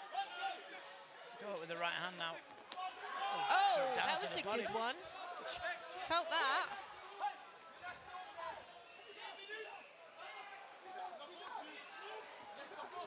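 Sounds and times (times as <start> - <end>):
crowd hubbub: 0.0 - 13.0
crowd shouts and calls: 0.0 - 13.0.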